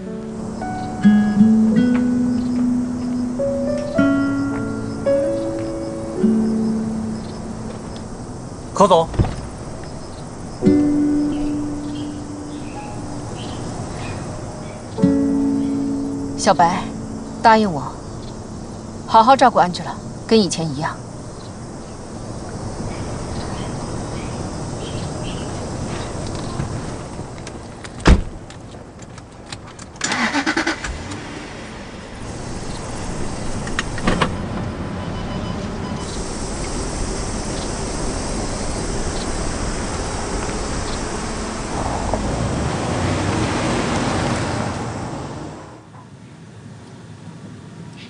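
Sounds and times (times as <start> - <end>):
car engine and road noise: 0.0 - 48.0.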